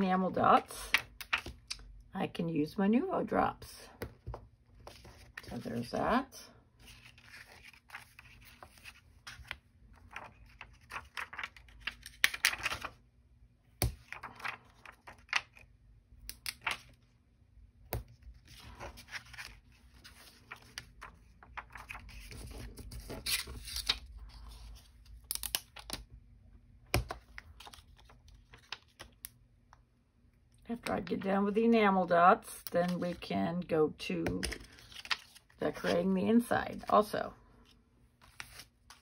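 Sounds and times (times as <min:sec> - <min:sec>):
paper rustling: 0:06.8 - 0:13.0, 0:13.9 - 0:15.7, 0:18.3 - 0:26.0, 0:34.4 - 0:36.2.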